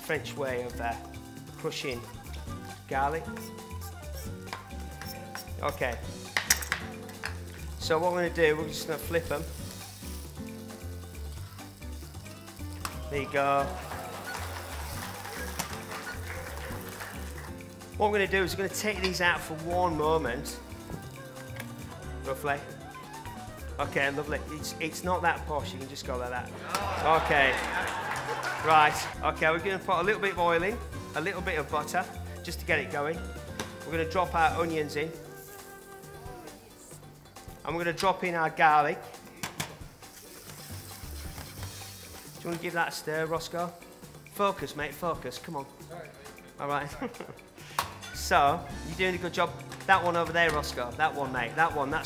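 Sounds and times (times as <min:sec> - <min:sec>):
onions frying in pan: 0:06.2 - 0:18.0, 0:39.9 - 0:43.0.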